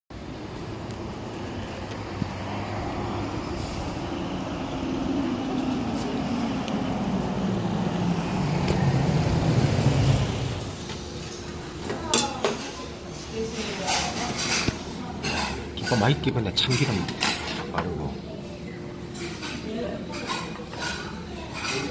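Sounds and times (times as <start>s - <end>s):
street traffic noise: 0.1s - 21.9s
passing vehicle engine: 0.2s - 11.5s.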